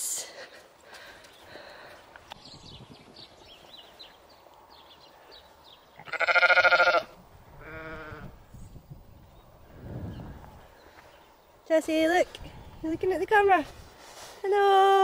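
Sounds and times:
sheep bleating: 6.0 - 8.3.

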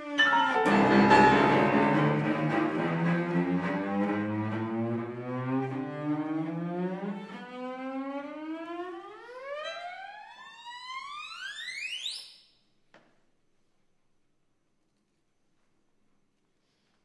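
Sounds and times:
bowed strings rising glissando: 0.0 - 6.8.

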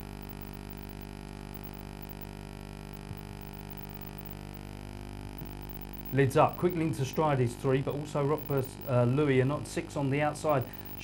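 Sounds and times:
low hum of fixed tones: 0.0 - 11.0.

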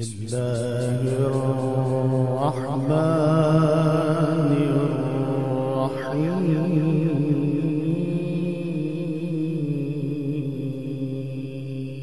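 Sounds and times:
man chanting a long sung note: 0.0 - 12.0.

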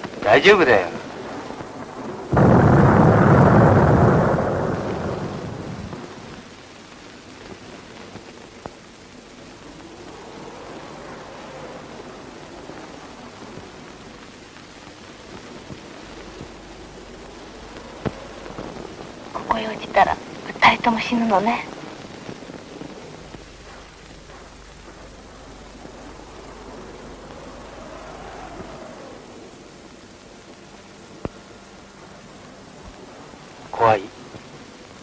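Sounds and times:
steady rain: 0.0 - 35.0
thunder clap rumbling: 0.0 - 35.0.

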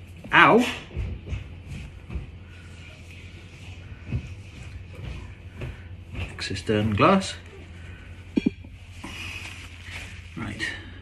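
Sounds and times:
paper towel rubbing and crinkling: 9.2 - 10.8.

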